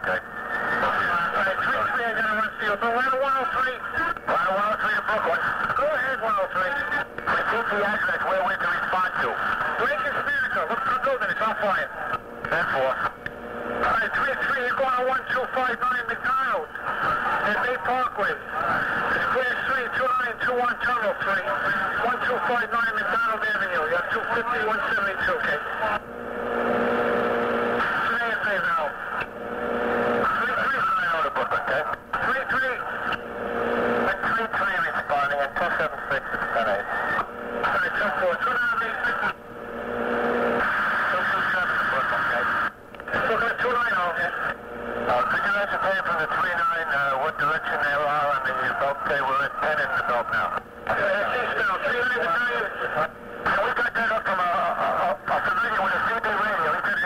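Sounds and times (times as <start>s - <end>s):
garbled voices over two-way radio: 0.0s - 13.2s, 13.8s - 26.7s, 27.3s - 57.0s
low steady hum: 0.2s - 55.3s.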